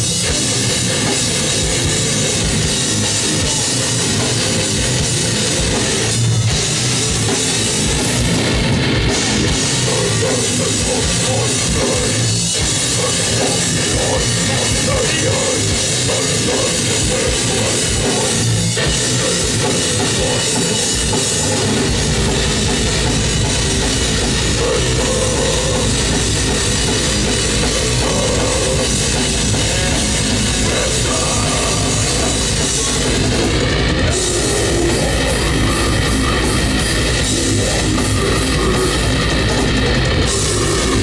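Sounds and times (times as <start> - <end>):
distorted guitars: 0.0 - 41.0
fast pounding kick drums: 0.0 - 41.0
loud grindcore band playing: 0.0 - 41.0.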